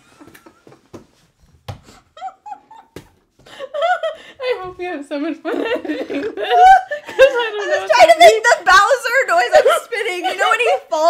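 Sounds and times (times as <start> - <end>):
women stifling laughter: 2.1 - 4.4, 5.5 - 8.4.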